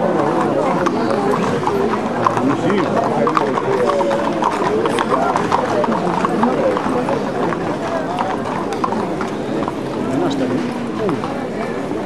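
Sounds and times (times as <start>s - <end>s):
chatter of many people: 0.0s - 12.0s
horse hooves clip-clopping on pavement: 0.0s - 12.0s.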